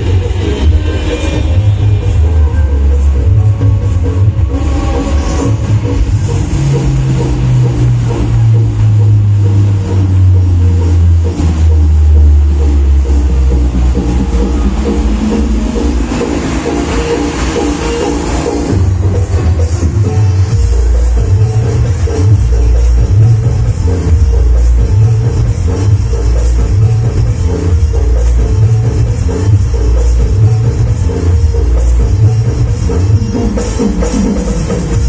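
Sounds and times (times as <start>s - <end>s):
electronic dance music: 0.0s - 35.0s.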